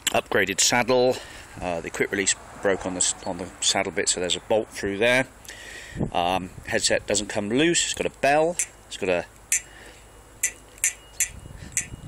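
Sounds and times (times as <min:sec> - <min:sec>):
bicycle bell clicks: 0:10.4 - 0:12.0.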